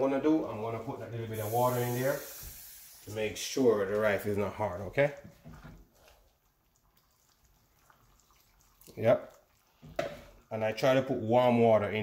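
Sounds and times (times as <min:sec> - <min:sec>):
water trickling into pan: 0:03.9 - 0:11.0.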